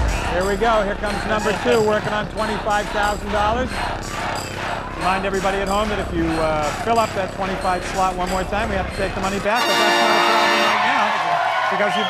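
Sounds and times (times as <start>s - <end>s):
studio audience cheering: 9.4s - 12.0s
electronic game-show chord: 9.6s - 11.0s.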